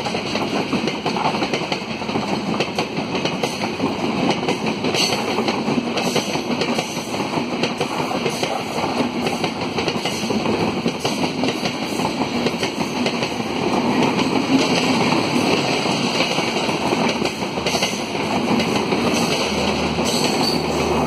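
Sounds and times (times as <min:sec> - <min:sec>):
train rumbling past: 0:00.0 - 0:21.0.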